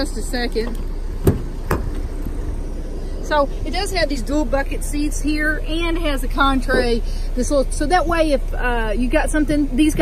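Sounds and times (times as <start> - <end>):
car door handle clicks: 0.6 - 2.4.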